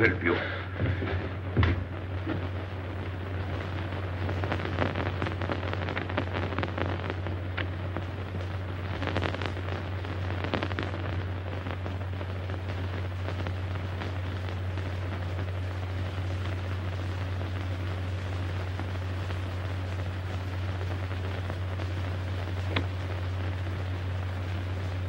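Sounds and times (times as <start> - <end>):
film crackle: 0.0 - 25.0
low hum: 0.0 - 25.0.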